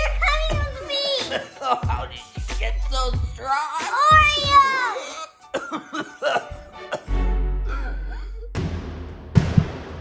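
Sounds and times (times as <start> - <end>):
high-pitched voice shouting: 3.4 - 5.1.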